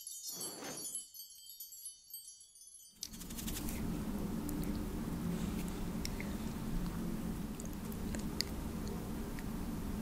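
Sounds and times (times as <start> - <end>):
wind chimes tinkling: 0.0 - 3.0.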